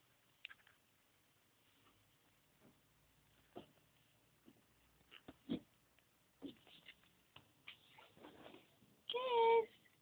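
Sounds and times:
soft rustle: 0:00.1 - 0:10.0.

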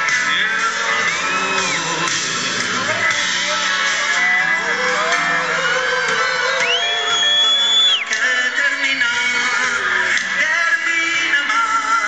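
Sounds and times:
live rock band playing: 0:00.0 - 0:07.2.

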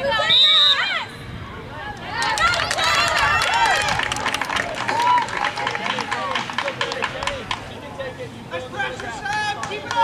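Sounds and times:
people shouting and calling out: 0:04.7 - 0:10.0.

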